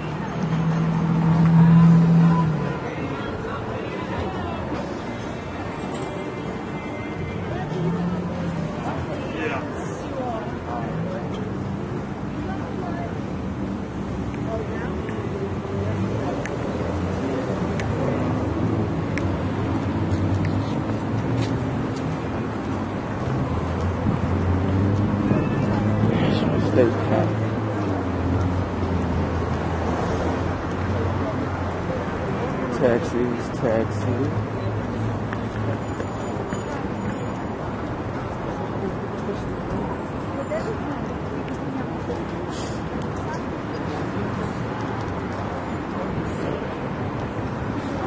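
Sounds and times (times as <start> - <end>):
indistinct voices of passers-by: 0.0 - 48.0
people chattering: 0.0 - 48.0
traffic at an intersection: 0.0 - 48.0
vehicle engine passing: 0.1 - 3.0.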